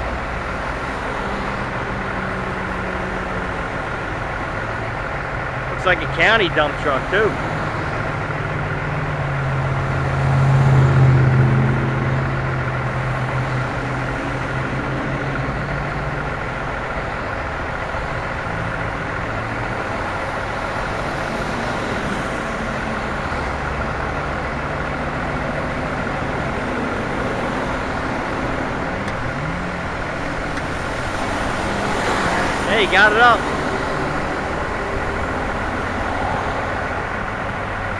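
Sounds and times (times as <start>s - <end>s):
heavy vehicle engines idling: 0.0s - 37.9s.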